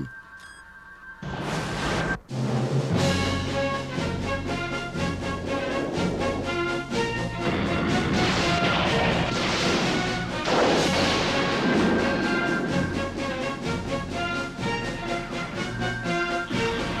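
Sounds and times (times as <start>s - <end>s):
film score music: 0.0s - 17.0s
energy beam blasts: 4.9s - 14.5s.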